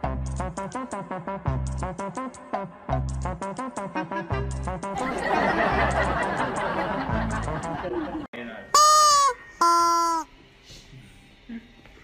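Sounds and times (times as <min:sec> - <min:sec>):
small dog crying: 0:08.8 - 0:10.3.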